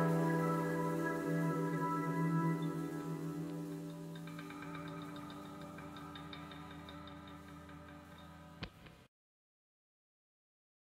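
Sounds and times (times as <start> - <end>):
soft ambient music: 0.0 - 9.0.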